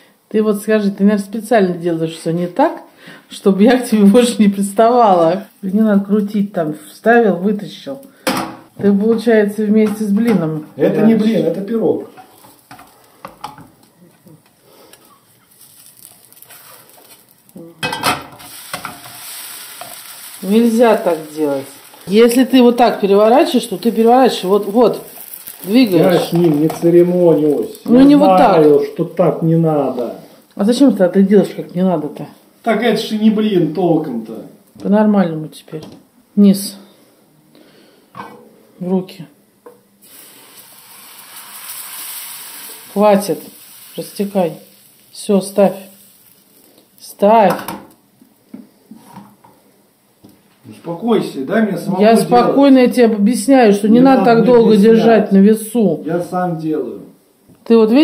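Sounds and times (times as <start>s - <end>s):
batter sizzling: 10.7s - 34.0s, 39.8s - 49.9s
spatula scraping frying pan: 15.5s - 26.8s.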